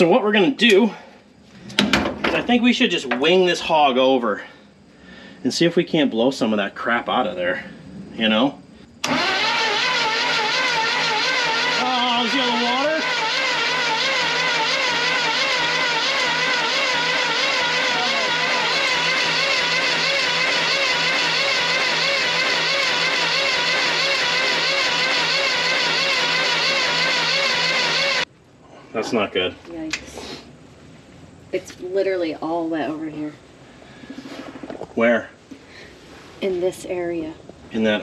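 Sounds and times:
engine starter cranking: 9.0s - 28.3s.

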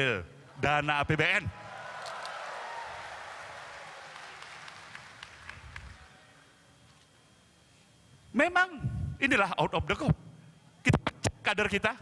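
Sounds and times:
audience applauding: 1.6s - 6.3s.

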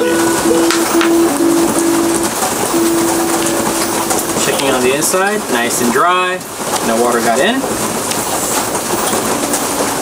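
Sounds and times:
low held note: 0.0s - 5.5s
rain hissing: 0.0s - 10.0s.

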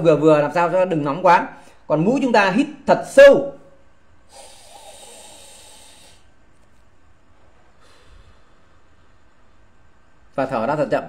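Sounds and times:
man breathing in through nose: 4.3s - 6.4s, 7.8s - 9.2s.

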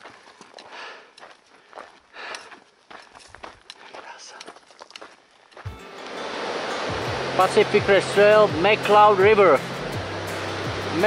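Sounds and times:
footsteps on dirt trail: 0.0s - 9.0s
music: 5.6s - 11.0s.

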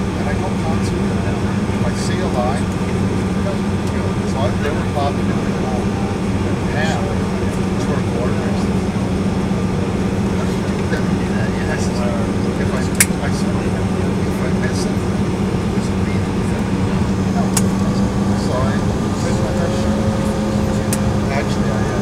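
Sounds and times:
aircraft cabin hum and rumble: 0.0s - 22.0s.

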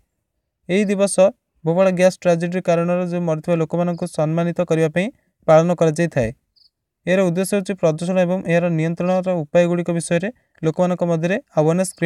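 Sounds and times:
narrator speaking: 0.7s - 6.4s, 7.1s - 12.0s.

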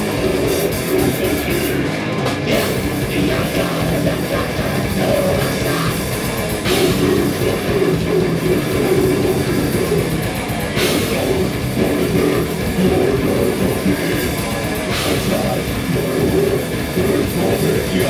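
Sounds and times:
heavy metal band playing: 0.0s - 18.0s.

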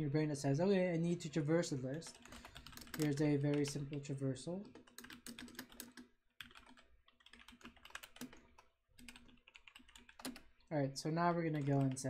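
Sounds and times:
computer keyboard typing: 1.8s - 10.6s, 11.4s - 12.0s.

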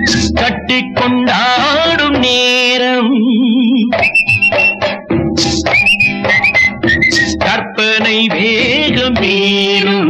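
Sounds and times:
old film song instrumental on vinyl: 0.0s - 10.0s.

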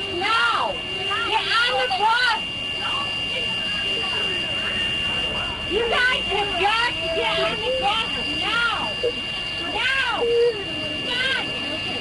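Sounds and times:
steady high-pitched tone: 0.0s - 12.0s.

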